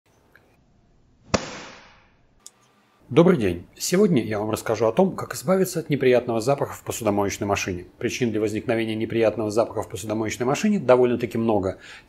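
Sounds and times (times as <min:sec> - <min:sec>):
sharp bang: 0:01.3 - 0:02.2.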